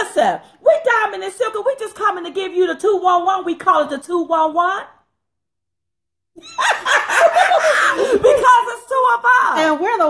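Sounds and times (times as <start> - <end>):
women laughing: 6.4 - 8.9
women talking: 8.0 - 10.0.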